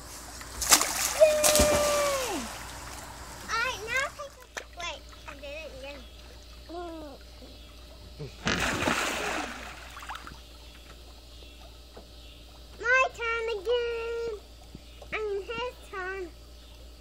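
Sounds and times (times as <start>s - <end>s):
pool water splashing: 0.0s - 11.3s.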